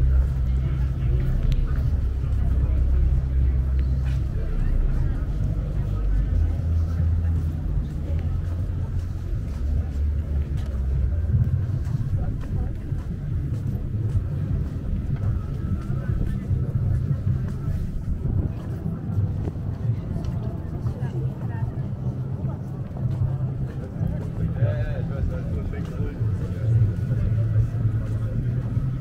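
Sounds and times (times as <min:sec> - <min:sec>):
low rumble: 0:00.0 - 0:29.0
voices of passers-by: 0:00.0 - 0:29.0.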